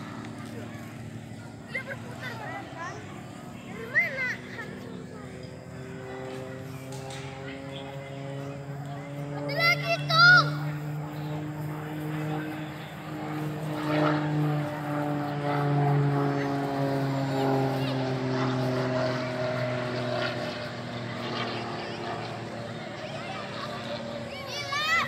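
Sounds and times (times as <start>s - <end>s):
propeller plane engine drone: 0.0s - 25.0s.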